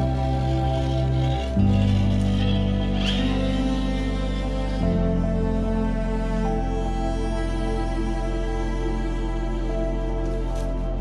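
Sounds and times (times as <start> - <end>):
background music of held chords: 0.0 - 11.0.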